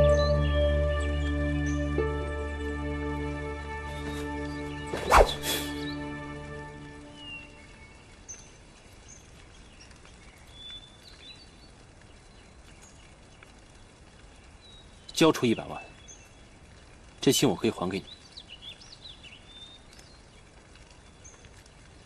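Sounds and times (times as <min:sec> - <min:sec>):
soft background music: 0:00.0 - 0:08.1
sharp swishes: 0:04.9 - 0:05.8.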